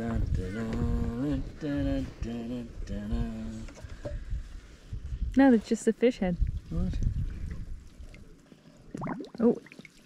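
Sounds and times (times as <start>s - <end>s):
water pouring and dripping: 8.9s - 10.0s.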